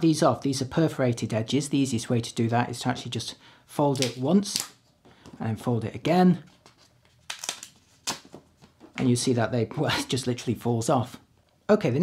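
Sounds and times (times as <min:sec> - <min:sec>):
photo paper crackling as folded: 0:06.5 - 0:08.4.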